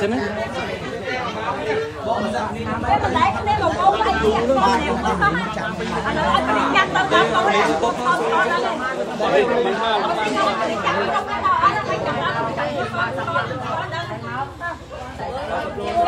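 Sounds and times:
crowd talking: 0:00.0 - 0:16.0.

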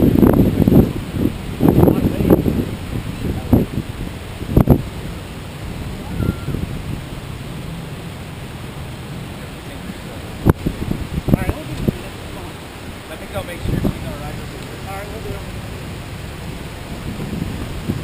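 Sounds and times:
surf washing: 0:00.0 - 0:18.0
wind buffeting microphone: 0:00.0 - 0:18.0.

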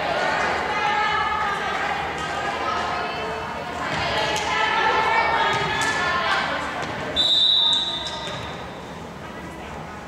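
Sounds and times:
referee's whistle blast: 0:07.2 - 0:08.9.

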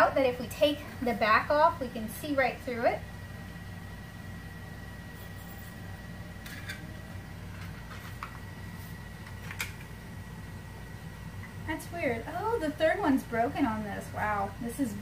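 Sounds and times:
low electrical hum: 0:00.0 - 0:15.0
thin high whine: 0:00.2 - 0:09.2.

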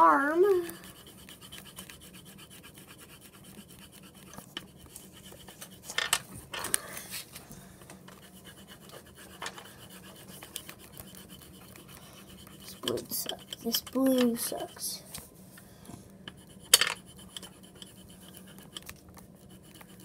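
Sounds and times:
coloring tool scratching on paper: 0:00.1 - 0:06.0, 0:08.1 - 0:15.0, 0:16.3 - 0:20.0.

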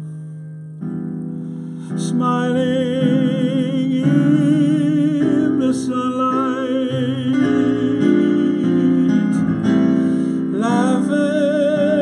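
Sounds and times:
piano chords: 0:00.0 - 0:12.0
man singing jazz: 0:01.9 - 0:12.0.

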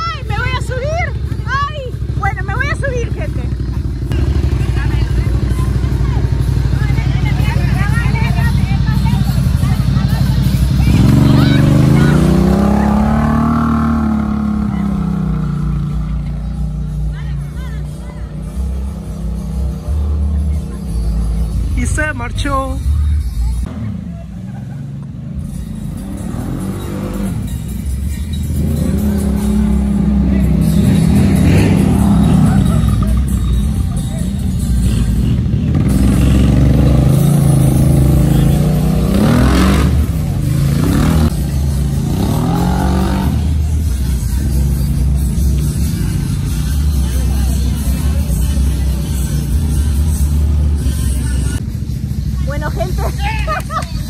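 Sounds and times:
dirt bike engine revving: 0:00.0 - 0:17.2, 0:25.8 - 0:33.8, 0:34.4 - 0:51.6.

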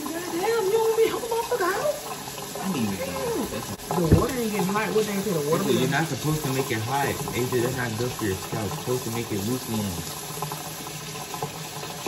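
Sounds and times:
tap water splashing in sink: 0:00.0 - 0:12.0.

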